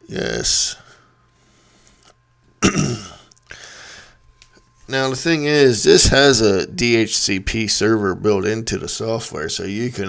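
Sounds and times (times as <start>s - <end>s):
man clearing his throat: 2.6s - 3.3s
raspy breath: 3.5s - 4.2s.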